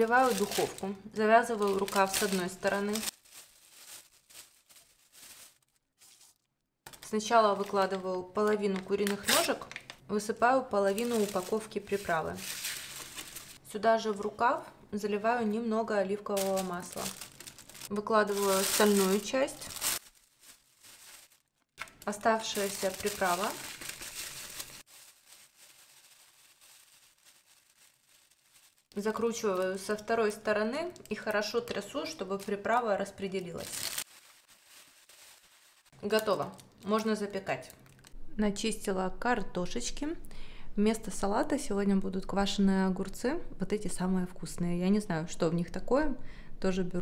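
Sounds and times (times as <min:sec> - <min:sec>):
plastic bag crinkling: 0:00.0 - 0:10.0, 0:10.7 - 0:13.6, 0:16.3 - 0:37.1.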